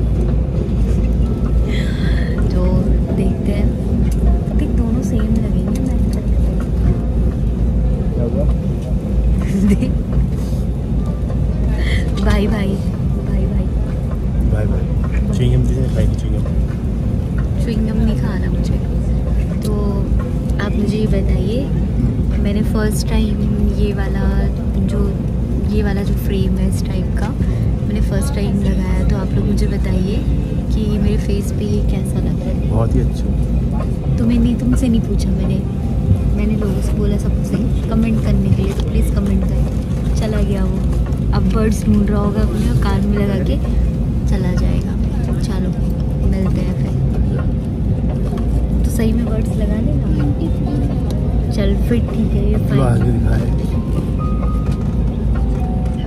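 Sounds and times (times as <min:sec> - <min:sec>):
airliner cabin rumble: 0:00.0 - 0:56.0
voices talking: 0:17.7 - 0:39.6, 0:49.0 - 0:53.9.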